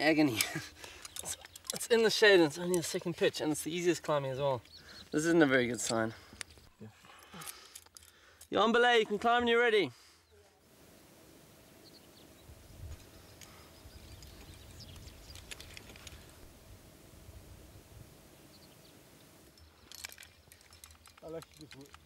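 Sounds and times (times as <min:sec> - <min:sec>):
metallic clinks of climbing gear: 0:00.0 - 0:09.2, 0:12.9 - 0:16.5, 0:19.4 - 0:22.0
low wind rumble: 0:10.7 - 0:19.5.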